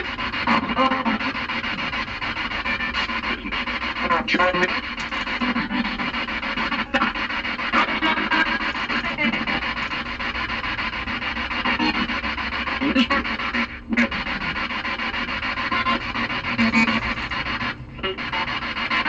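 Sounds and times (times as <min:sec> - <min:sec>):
choppy radio static: 0:00.0 - 0:19.0.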